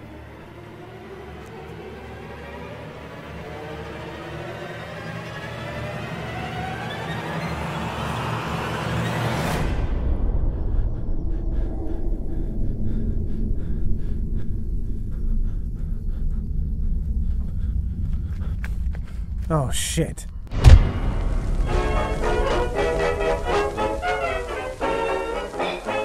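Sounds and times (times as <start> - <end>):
climbing orchestral tones: 0.0 - 9.7, 20.6 - 26.0
deep rumbling drone: 9.4 - 19.5, 20.3 - 26.0.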